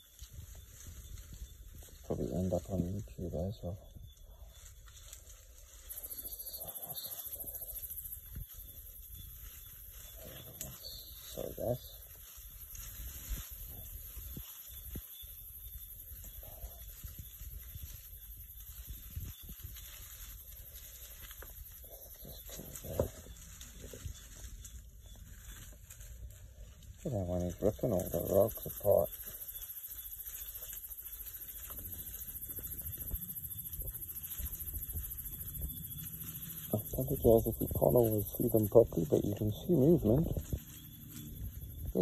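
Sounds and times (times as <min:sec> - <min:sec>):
rustling in dry leaves: 0:00.0 - 0:42.0.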